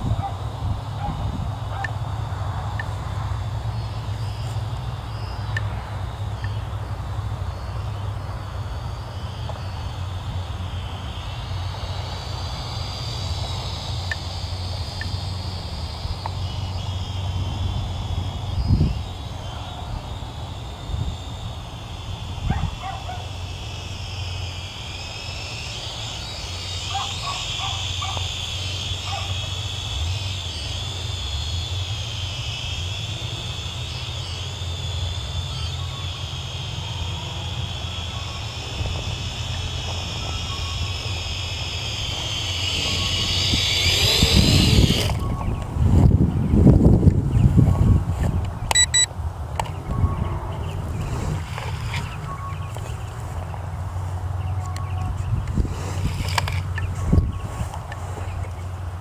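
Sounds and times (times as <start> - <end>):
drone propellers whining: 0.0 - 59.0
steady low rumble: 0.0 - 59.0.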